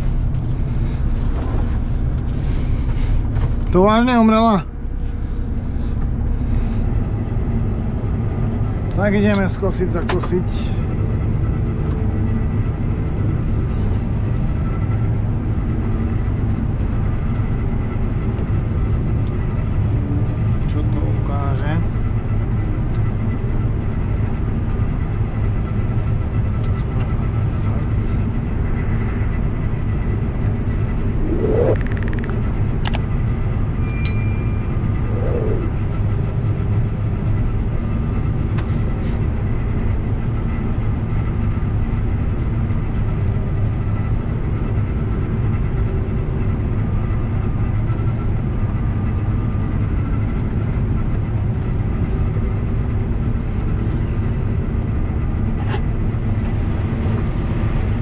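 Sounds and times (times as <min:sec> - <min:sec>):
combine harvester drone: 0:00.0 - 0:58.0
brief rising tones: 0:30.9 - 0:32.4, 0:33.8 - 0:35.8.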